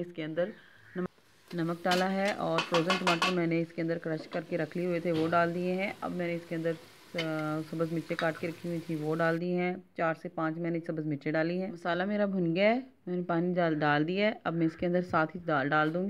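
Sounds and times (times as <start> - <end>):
woman talking: 0.0 - 16.0
spices sizzling in a pot: 0.5 - 9.4.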